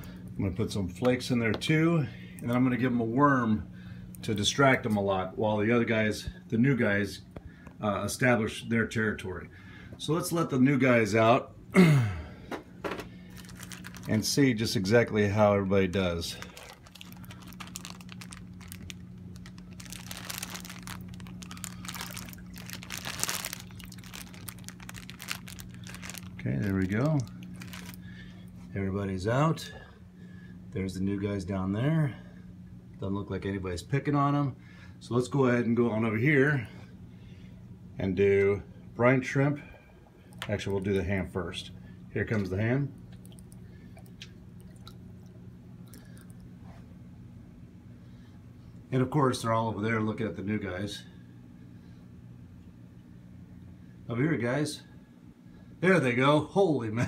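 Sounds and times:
steady low hum: 0.0s - 57.0s
plastic bag crinkling: 13.2s - 14.6s, 16.1s - 28.2s
water drips: 42.3s - 46.5s.

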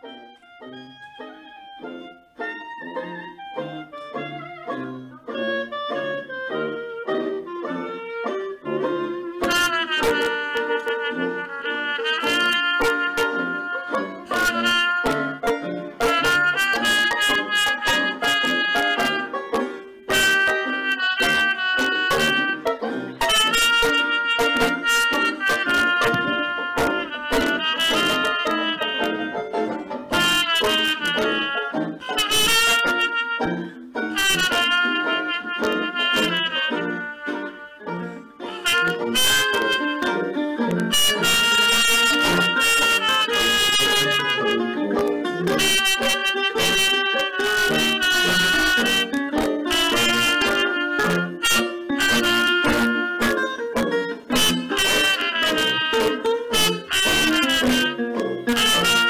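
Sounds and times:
instrumental accompaniment: 0.0s - 59.0s
muted trumpet playing blues: 0.0s - 59.0s.

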